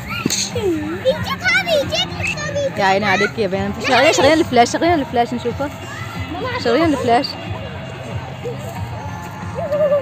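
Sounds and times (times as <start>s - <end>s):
children talking and exclaiming: 0.0s - 10.0s.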